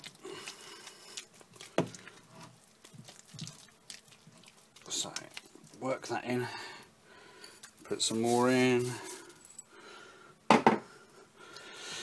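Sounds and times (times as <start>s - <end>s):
stirring thick mash: 0.0s - 6.9s, 7.6s - 9.4s.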